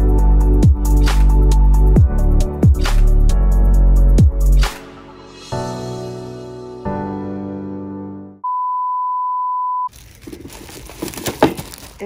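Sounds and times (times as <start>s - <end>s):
background music: 0.0s - 8.4s
high pure beep: 8.4s - 9.9s.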